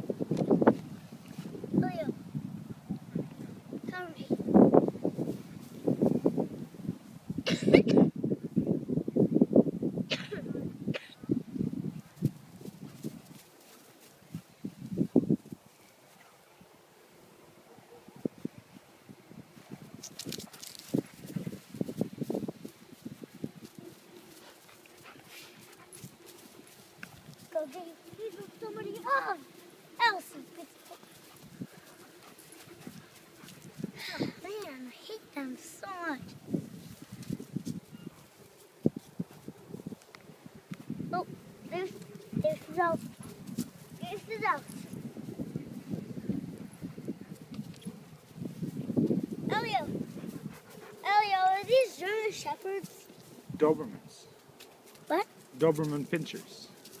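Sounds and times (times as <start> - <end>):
dogs huffing: 23.6 - 27.3, 30.6 - 34.4, 49.9 - 51.7.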